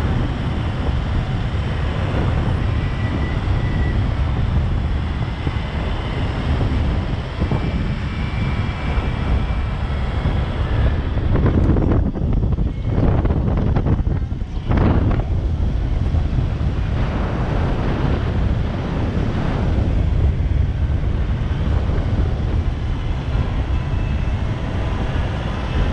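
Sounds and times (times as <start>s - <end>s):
vehicle engine and tyres rumbling: 0.0s - 25.9s
wind on microphone: 0.0s - 25.9s.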